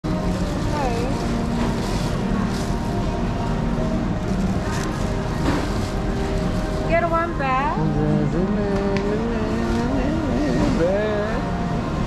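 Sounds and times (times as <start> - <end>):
faint indistinct voices: 0.1 - 12.0.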